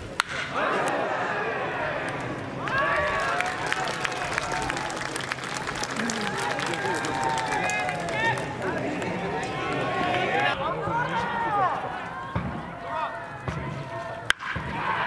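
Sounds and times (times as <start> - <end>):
men shouting long calls: 0.5 - 12.3
hand claps: 2.0 - 10.5.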